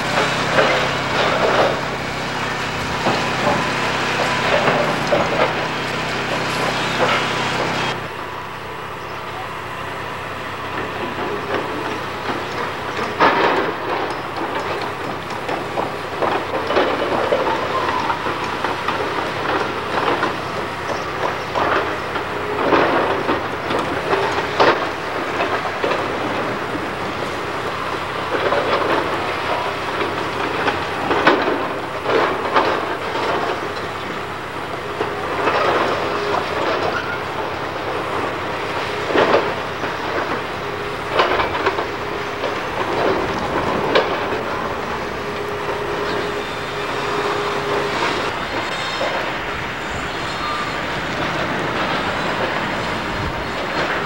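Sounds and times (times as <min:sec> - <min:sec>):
excavator engine running: 0:00.0 - 0:54.0
steady whine: 0:00.0 - 0:54.0
breaking masonry and timber crashes: 0:11.5 - 0:50.1.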